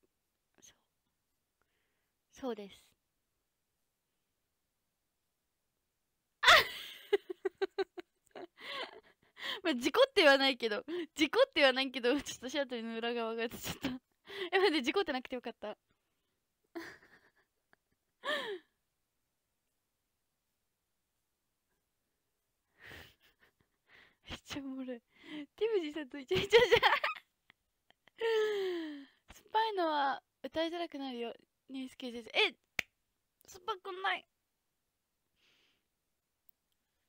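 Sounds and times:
woman sighing: 28.2 - 29.2.

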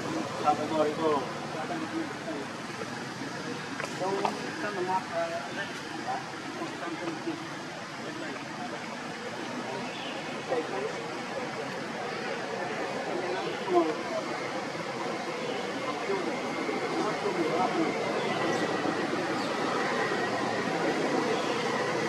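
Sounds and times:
distant people talking: 0.0 - 22.0
outdoor background hiss: 0.0 - 22.0.

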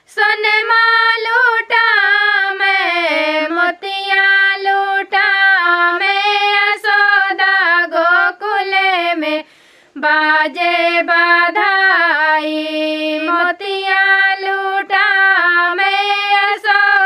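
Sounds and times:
women singing folk song: 0.0 - 17.0.

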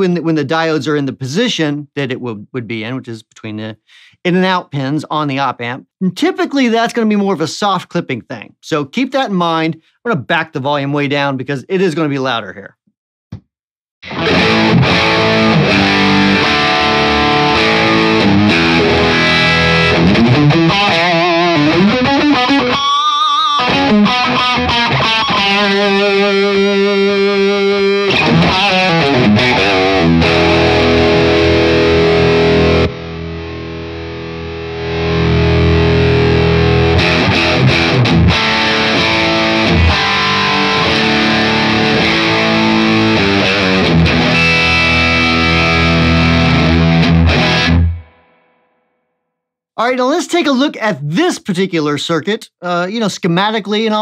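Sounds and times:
distorted electric guitar: 14.0 - 48.6.

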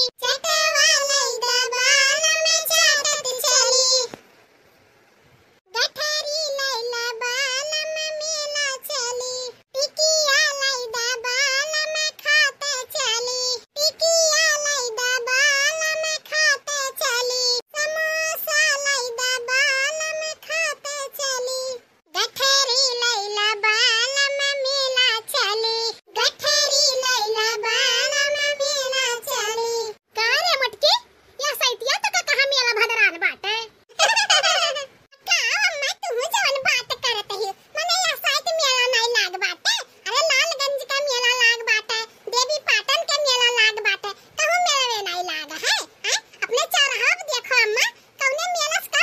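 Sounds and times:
high-pitched cartoon voice singing: 0.0 - 4.2, 5.7 - 49.0.

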